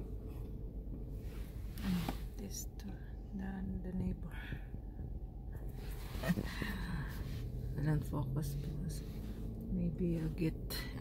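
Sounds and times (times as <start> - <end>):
low background rumble: 0.0 - 11.0.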